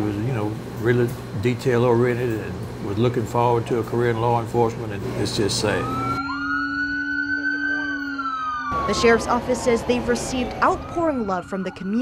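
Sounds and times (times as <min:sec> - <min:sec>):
police siren wailing: 0:05.5 - 0:12.0.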